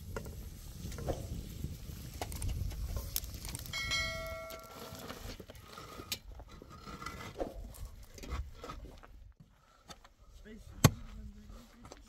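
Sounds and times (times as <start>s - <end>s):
metal cooking pot ringing: 3.8s - 4.9s.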